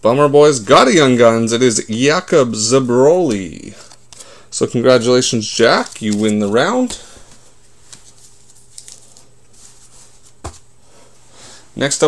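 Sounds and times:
low steady hum: 0.0 - 12.0
trading cards rustling: 5.2 - 10.6.

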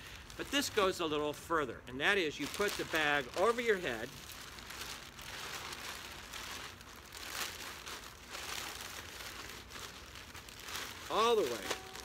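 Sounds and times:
plastic bag crinkling and rustling: 0.0 - 1.4, 2.0 - 12.0.

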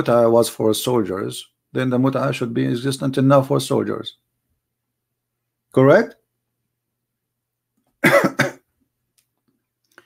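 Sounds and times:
man clearing throat: 8.0 - 8.7.

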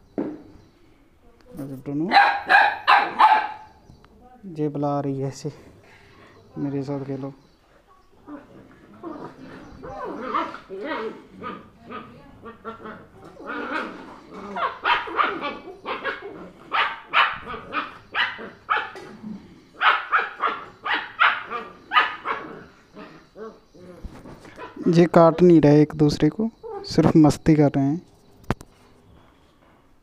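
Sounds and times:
puppies yipping and barking: 2.2 - 3.8, 8.2 - 25.6, 26.6 - 27.0.

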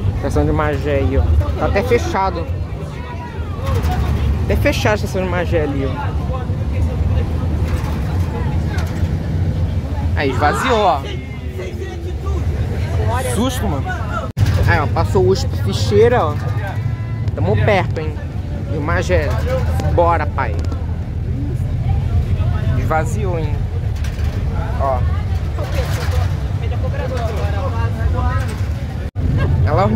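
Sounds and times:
bus engine and road rumble: 0.0 - 29.9
faint passenger voices: 0.0 - 29.9.

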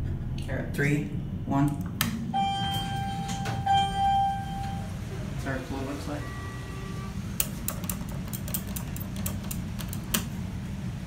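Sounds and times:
steady low hum: 0.0 - 11.0
elevator equipment clicking: 7.4 - 10.4.

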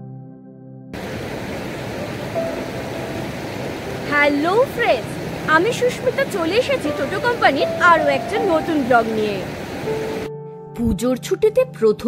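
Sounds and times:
soft ambient music: 0.0 - 12.0
stream rushing over boulders: 1.0 - 10.3.

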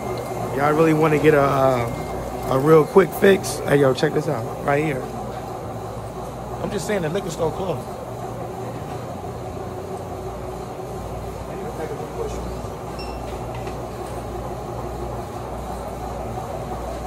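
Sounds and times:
steady low hum: 0.0 - 17.0
barcode scanner beep: 13.0 - 13.3.

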